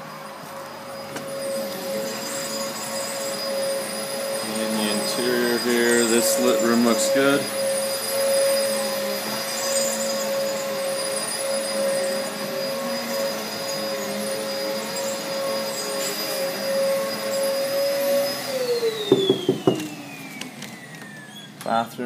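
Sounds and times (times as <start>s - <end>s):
electric motor whining: 0.0s - 21.6s.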